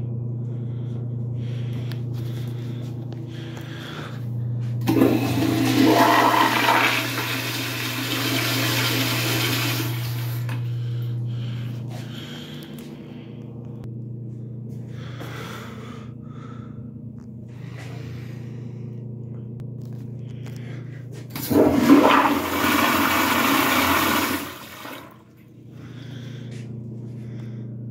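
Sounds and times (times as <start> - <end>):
toilet flushing: 4.8 - 10.7, 21.3 - 25.4.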